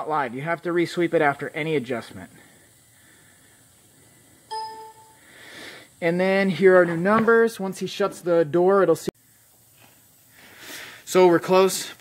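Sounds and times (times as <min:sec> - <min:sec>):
short electronic beep: 0:04.5 - 0:05.2.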